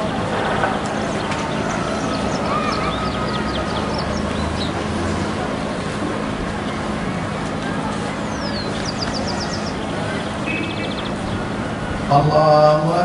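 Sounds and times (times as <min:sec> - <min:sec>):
large crowd murmur: 0:00.0 - 0:13.0.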